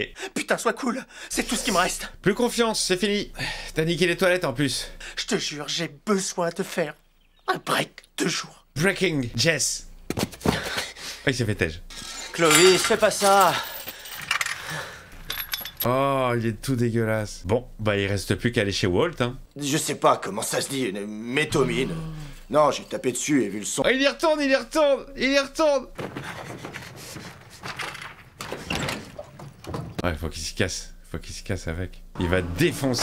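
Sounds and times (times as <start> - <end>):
chain-link fence rattling: 11.9 - 15.9
rustling: 25.9 - 30.0
knocks and clatter: 25.9 - 30.1.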